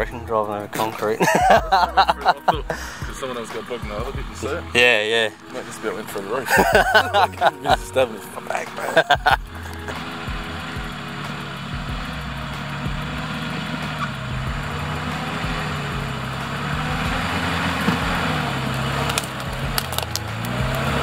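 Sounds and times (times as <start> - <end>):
diesel engine running at low revs: 0.0 - 21.0
sharp clicks: 9.4 - 21.0.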